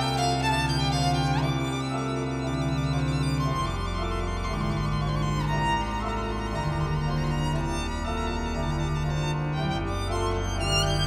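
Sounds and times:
pipe organ notes: 0.0s - 11.0s
violin melody with vibrato: 0.0s - 11.0s.

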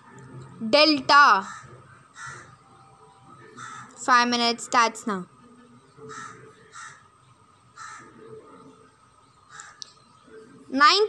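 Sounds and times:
bird calling: 9.3s - 10.4s.

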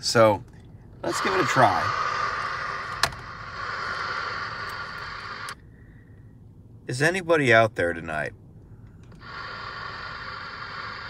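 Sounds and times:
radio static hissing: 1.0s - 5.6s, 9.2s - 11.0s.

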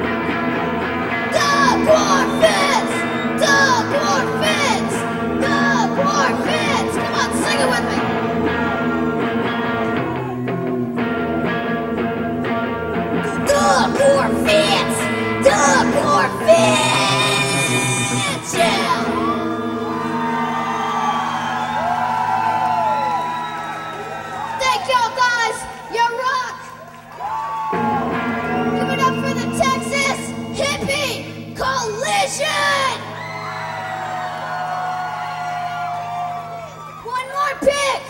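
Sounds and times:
electric guitar chord ringing: 0.0s - 24.6s, 27.7s - 36.9s
crowd whooping and cheering: 0.1s - 10.7s, 16.6s - 30.8s, 32.7s - 37.4s
person yelling a long note: 1.3s - 9.2s.

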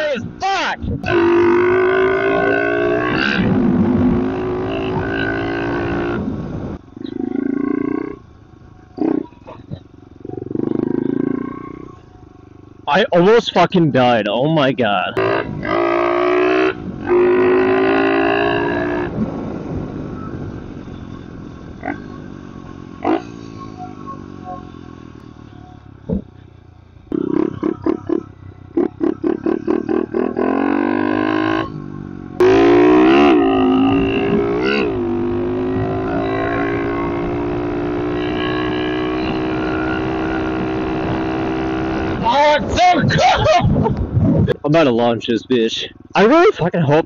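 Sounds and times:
motorbike engine revving: 0.0s - 13.0s, 15.0s - 44.5s.

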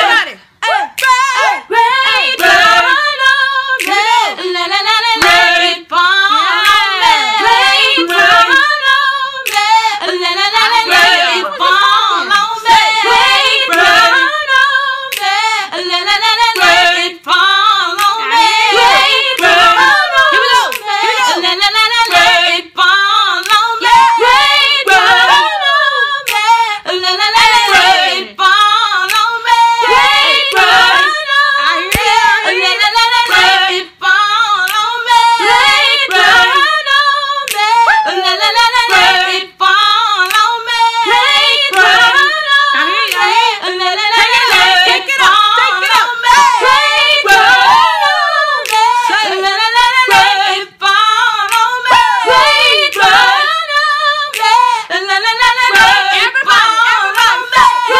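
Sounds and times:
women singing gospel: 0.0s - 57.9s
hand claps: 1.0s - 1.3s, 3.8s - 4.2s, 5.2s - 5.4s, 9.4s - 9.8s, 15.1s - 15.4s, 18.0s - 22.4s, 23.4s - 24.2s, 26.2s - 26.6s, 29.1s - 29.4s, 31.8s - 32.5s, 34.6s - 35.0s, 37.5s - 38.1s, 40.2s - 40.6s, 43.0s - 43.4s, 48.6s - 49.0s, 51.4s - 52.1s, 54.3s - 54.6s.

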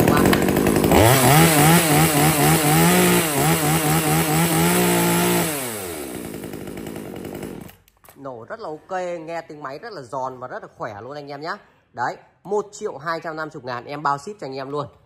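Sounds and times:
chainsaw pull-started and revving: 0.0s - 7.9s.

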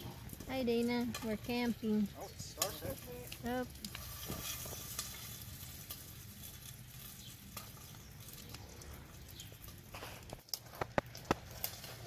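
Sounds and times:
campfire crackles: 0.0s - 12.0s
popcorn kernels popping: 0.0s - 12.0s
popcorn sizzling in a pan: 0.0s - 12.0s.

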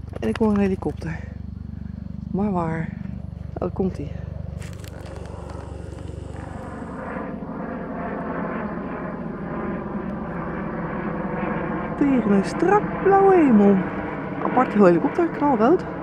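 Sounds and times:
helicopter flying overhead: 0.0s - 16.0s.

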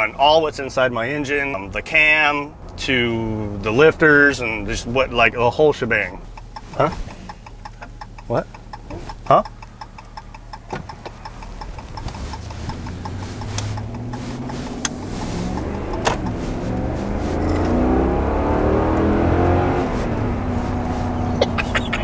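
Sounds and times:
truck engine accelerating: 0.0s - 22.0s
light ticking: 6.2s - 16.4s.

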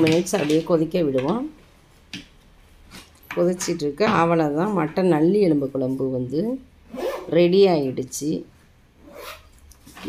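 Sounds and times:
woman speaking: 0.0s - 1.6s, 3.3s - 6.7s, 7.3s - 8.5s.

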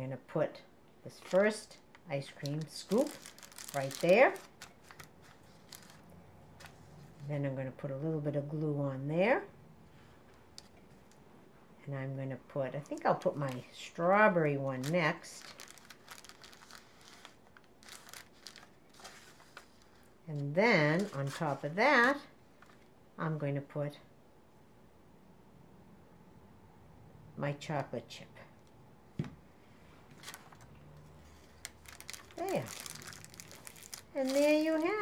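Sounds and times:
paper rustling and crinkling: 1.1s - 7.3s, 13.0s - 13.7s, 14.7s - 20.2s, 20.8s - 22.9s, 30.1s - 35.0s.

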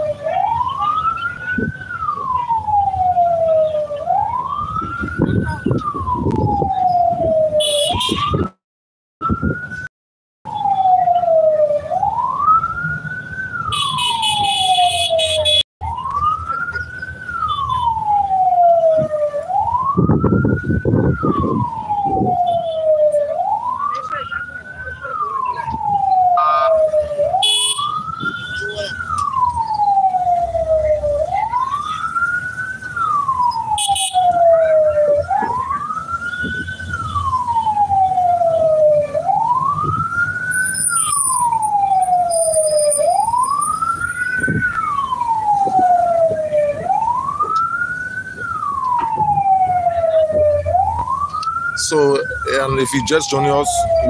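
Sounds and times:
moving vehicle road noise: 0.0s - 8.6s, 9.2s - 9.9s, 10.5s - 54.0s
vehicle siren wailing: 0.0s - 8.6s, 9.2s - 9.9s, 10.5s - 54.0s.

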